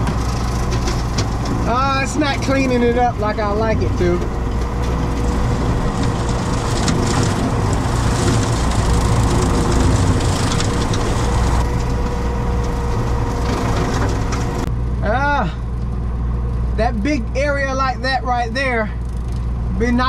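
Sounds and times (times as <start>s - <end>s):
rotary cutter shredding brush: 0.0s - 14.7s
faint steady whine: 0.0s - 20.0s
tractor engine running: 0.0s - 20.0s.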